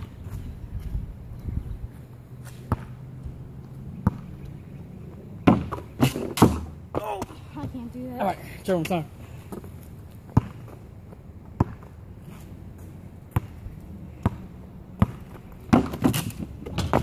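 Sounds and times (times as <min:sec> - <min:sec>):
basketball bouncing on asphalt: 0:00.0 - 0:08.0, 0:08.9 - 0:17.0.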